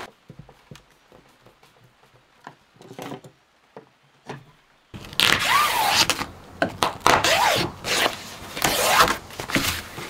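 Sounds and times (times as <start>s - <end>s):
membrane rustling and crinkling: 5.0s - 10.0s.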